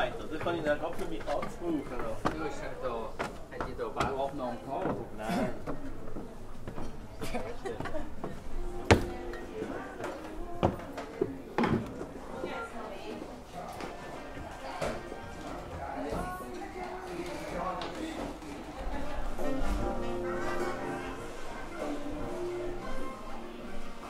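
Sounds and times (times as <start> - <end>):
music playing: 18.5 - 24.0.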